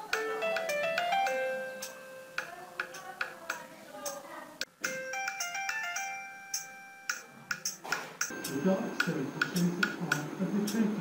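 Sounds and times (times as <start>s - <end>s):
mobile phone ringtone melody: 0.0s - 3.0s, 4.8s - 7.6s, 8.3s - 9.5s
clock ticking: 0.0s - 11.0s.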